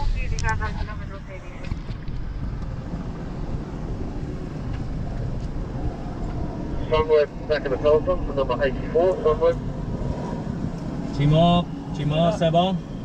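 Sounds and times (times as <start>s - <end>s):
car road noise rumble: 0.0s - 13.0s
wind buffeting microphone: 0.0s - 13.0s.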